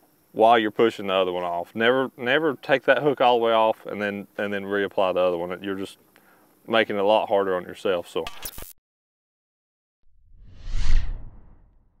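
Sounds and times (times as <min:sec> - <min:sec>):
whoosh with deep rumble: 0:10.1 - 0:12.0.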